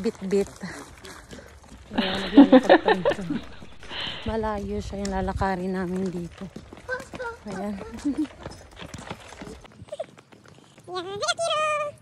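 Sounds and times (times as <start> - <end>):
footsteps on paved path: 0.0 - 12.0
low wind rumble on microphone: 3.1 - 6.3.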